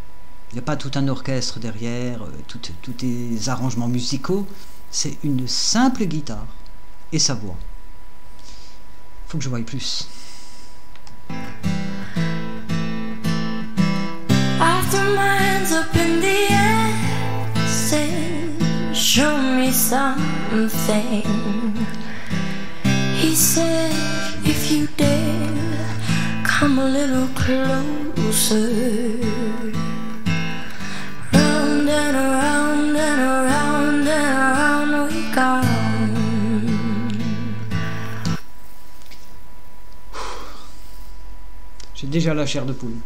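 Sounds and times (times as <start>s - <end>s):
acoustic guitar: 10.3s - 39.4s
woman singing ballad: 14.3s - 22.3s, 22.9s - 30.1s, 30.8s - 37.9s.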